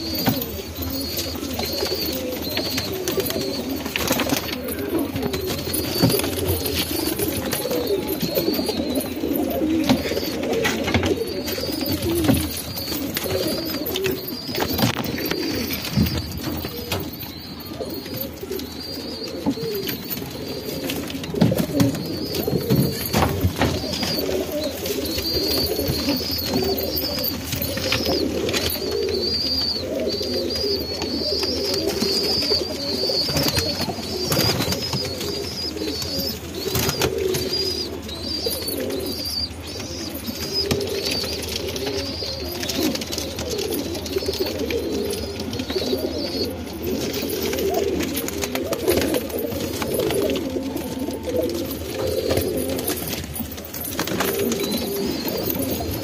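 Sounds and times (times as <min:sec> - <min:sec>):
thin high chirping: 0:00.0 - 0:42.9
pigeons cooing: 0:00.0 - 0:56.0.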